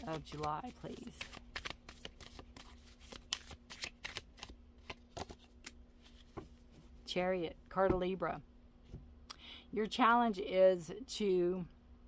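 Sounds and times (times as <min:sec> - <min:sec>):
cards being shuffled: 0:00.0 - 0:06.6.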